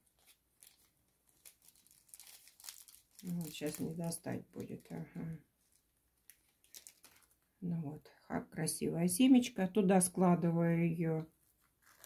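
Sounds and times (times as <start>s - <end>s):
plastic packet crinkling: 0.0s - 7.5s, 11.4s - 12.0s.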